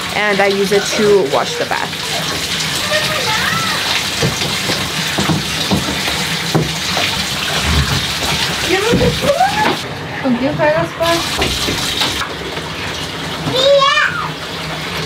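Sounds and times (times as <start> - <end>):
water running in bathtub: 0.0 - 15.0.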